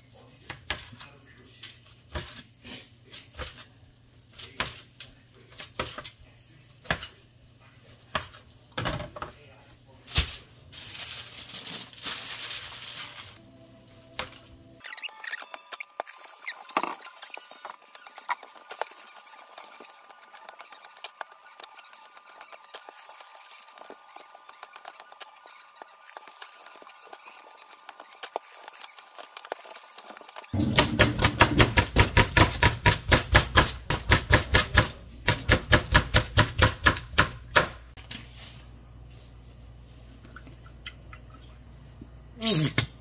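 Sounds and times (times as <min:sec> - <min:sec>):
aluminium foil crinkling: 0:10.0 - 0:13.4, 0:14.9 - 0:30.6
knife chopping on cutting board: 0:30.6 - 0:37.8.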